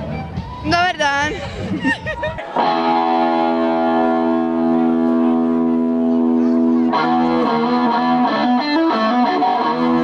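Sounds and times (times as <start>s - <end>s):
amplified electric guitar chord: 2.6s - 10.0s.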